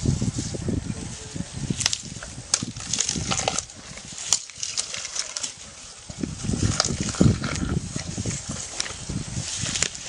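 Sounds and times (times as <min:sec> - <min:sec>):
low irregular animal pulses: 0:02.1 - 0:10.0.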